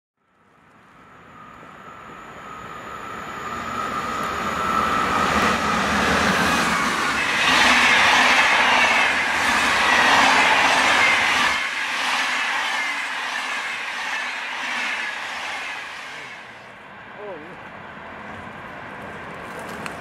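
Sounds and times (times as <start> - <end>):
high whine sliding downward: 0.8 - 16.8
train wheels rushing on rail: 1.3 - 20.0.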